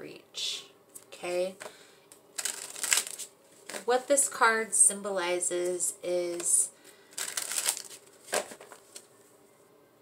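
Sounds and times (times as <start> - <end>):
woman speaking: 0.0 - 1.6, 3.7 - 6.8
cards being shuffled: 2.4 - 3.9, 6.3 - 9.1.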